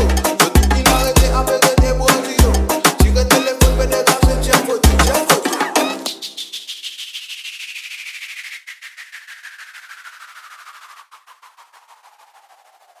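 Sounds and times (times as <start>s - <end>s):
falling pitch sweep: 5.8s - 13.0s.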